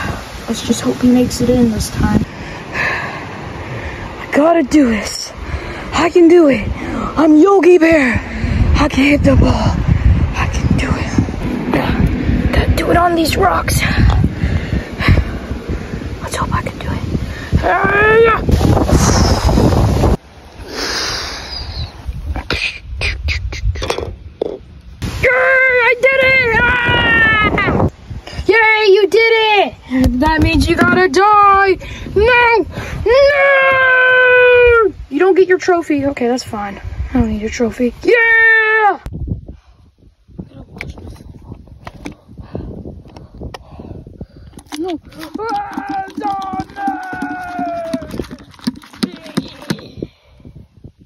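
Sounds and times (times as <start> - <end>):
wind buffeting microphone: 0.0 - 38.4, 39.0 - 51.0
golf club and ball rattling: 23.8 - 24.6.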